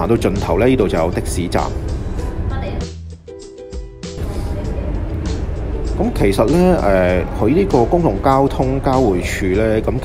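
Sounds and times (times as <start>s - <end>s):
background music: 0.0s - 10.0s
low rumble of traffic: 0.0s - 10.0s.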